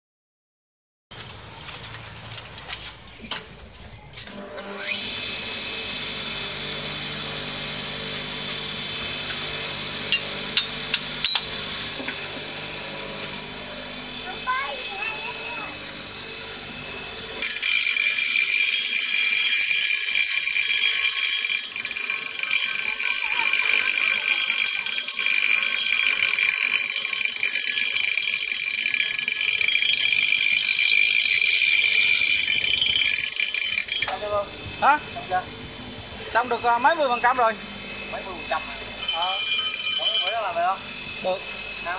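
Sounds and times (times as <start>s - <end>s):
blade grinding whine: 4.2s - 41.9s
bench grinder running: 4.3s - 41.9s.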